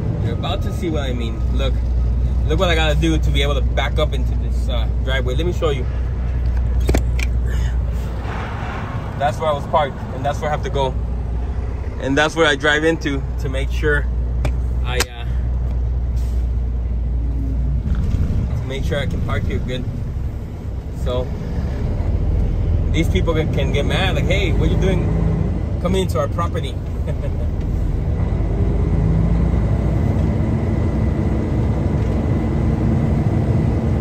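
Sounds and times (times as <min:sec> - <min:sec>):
diesel truck engine humming: 0:00.0 - 0:34.0.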